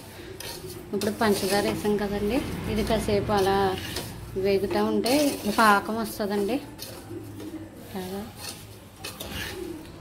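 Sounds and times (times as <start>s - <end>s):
metal spoon stirring in pot: 0.0s - 10.0s.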